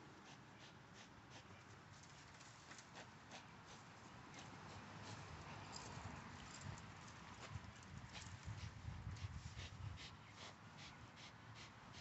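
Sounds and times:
rope and paws clicking and rustling: 1.6 - 3.4, 4.3 - 9.6.

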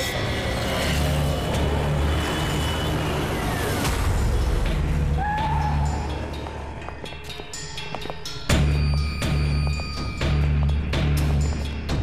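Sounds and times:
dramatic background score: 0.0 - 12.0.

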